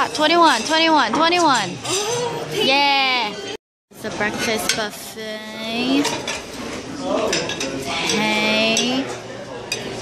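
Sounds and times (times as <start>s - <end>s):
dishes and cutlery clattering: 0.0s - 2.6s, 4.3s - 5.0s, 5.9s - 10.0s.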